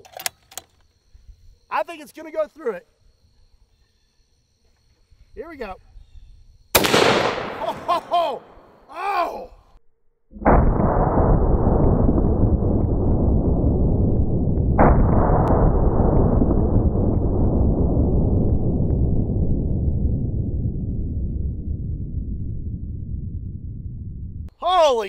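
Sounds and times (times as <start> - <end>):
slowed-down rifle gunshot boom: 6.8 - 8.6, 10.4 - 22.6.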